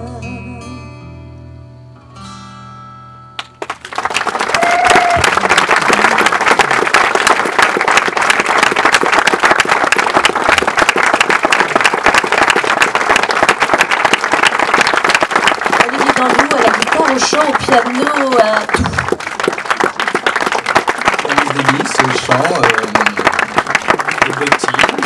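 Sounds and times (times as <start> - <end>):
audience applauding: 3.4 - 25.0.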